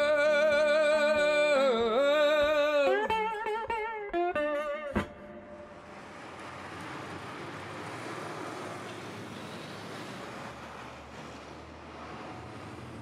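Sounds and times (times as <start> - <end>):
cars passing: 5.0 - 13.0.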